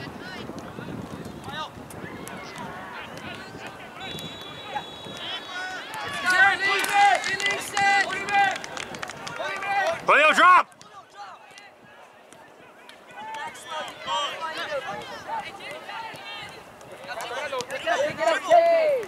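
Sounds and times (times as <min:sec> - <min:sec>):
people calling and shouting: 0:00.0 - 0:19.0.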